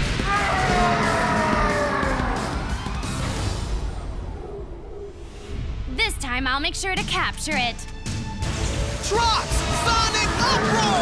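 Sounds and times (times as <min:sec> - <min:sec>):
dramatic background music: 0:00.0 - 0:11.0
monster roaring: 0:00.3 - 0:05.5.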